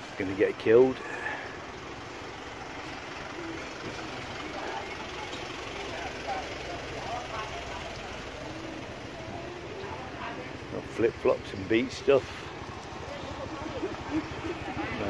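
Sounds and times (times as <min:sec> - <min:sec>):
truck engine running: 0:00.0 - 0:15.0
faint voices: 0:02.8 - 0:15.0.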